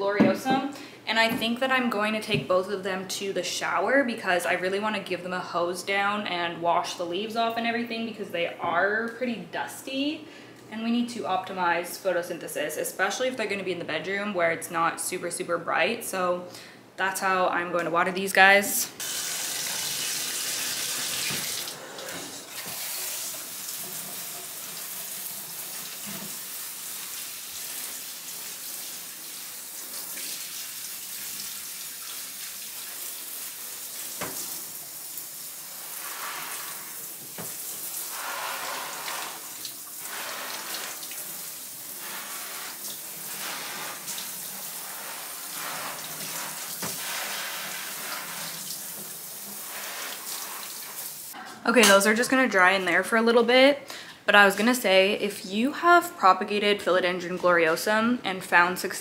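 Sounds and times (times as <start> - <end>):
shower water spraying: 19.0 - 51.4.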